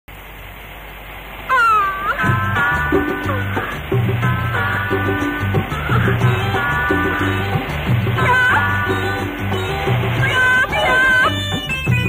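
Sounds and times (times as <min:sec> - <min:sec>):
film soundtrack hiss: 0:00.1 - 0:12.0
woman wailing: 0:01.5 - 0:03.8, 0:08.2 - 0:09.2, 0:10.2 - 0:11.8.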